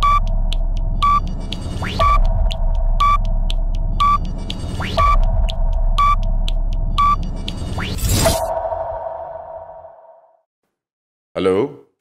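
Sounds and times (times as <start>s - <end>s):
whoosh and hit: 7.7s - 10.2s.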